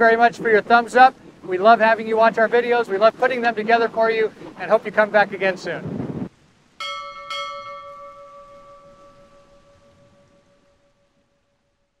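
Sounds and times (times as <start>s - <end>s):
bell ringing: 6.8s - 11.2s.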